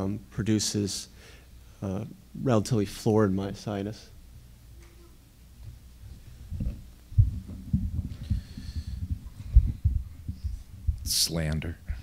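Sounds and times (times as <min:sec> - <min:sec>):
microphone handling thumps: 0:06.1 - 0:12.0.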